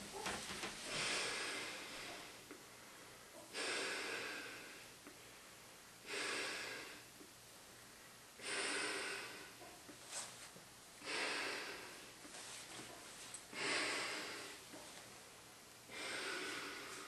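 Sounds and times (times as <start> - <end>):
breathing through a gas mask: 15.9 - 17.0.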